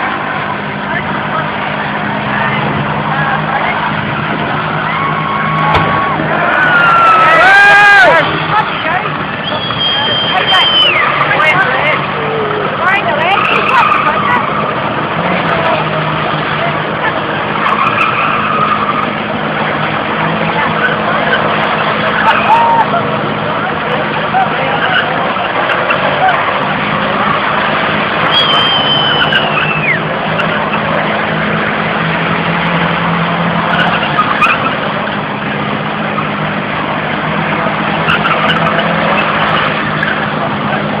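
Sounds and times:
car engine running hard: 0:00.0 - 0:41.0
tyres squealing: 0:02.6 - 0:41.0.

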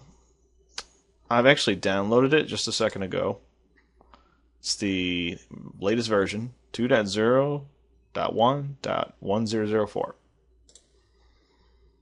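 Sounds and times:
faint computer mouse click: 0:10.7 - 0:11.0.

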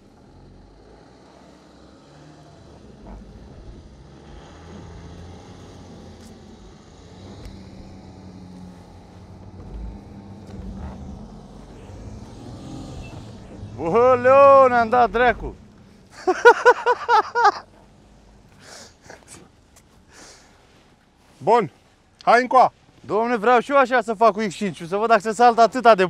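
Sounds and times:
vehicle engine humming uphill: 0:00.0 - 0:26.0.

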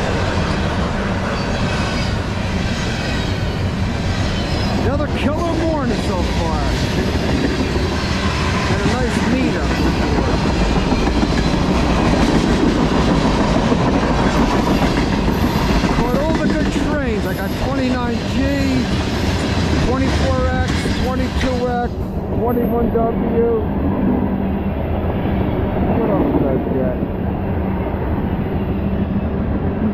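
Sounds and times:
train wheels rumbling on rails: 0:00.0 - 0:29.9.

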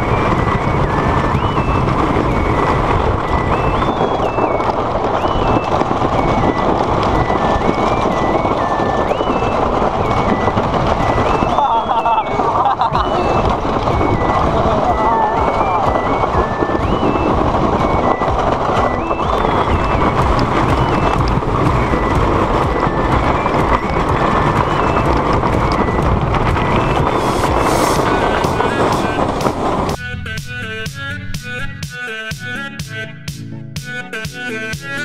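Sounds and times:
roller coaster wind and wheel rattle: 0:00.0 - 0:30.4
music with melody: 0:00.0 - 0:35.0.

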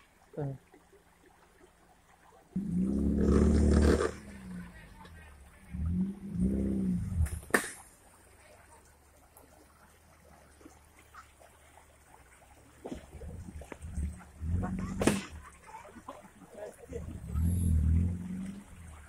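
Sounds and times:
off-road vehicle engine revving: 0:02.6 - 0:07.6, 0:13.4 - 0:15.5, 0:16.8 - 0:19.0
sharp crack: 0:07.2 - 0:07.9, 0:15.0 - 0:15.4.

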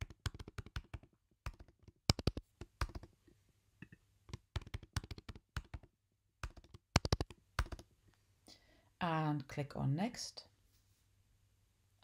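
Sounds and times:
typing on computer keyboard: 0:00.0 - 0:03.1, 0:04.3 - 0:07.9.

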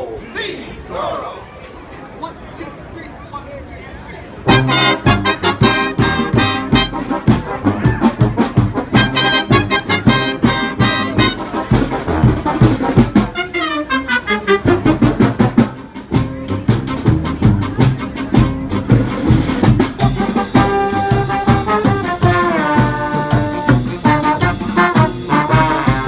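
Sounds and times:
brass marching band playing: 0:04.4 - 0:26.0.

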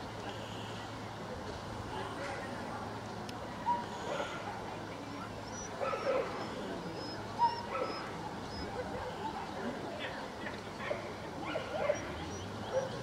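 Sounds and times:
dog yipping and whimpering: 0:05.4 - 0:08.8.

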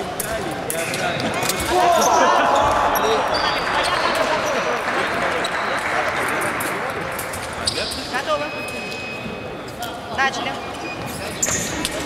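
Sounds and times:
overlapping voices: 0:01.7 - 0:08.1.

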